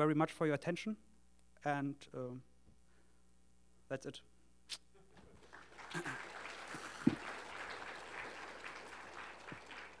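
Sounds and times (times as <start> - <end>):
audience applauding: 5.3 - 10.0.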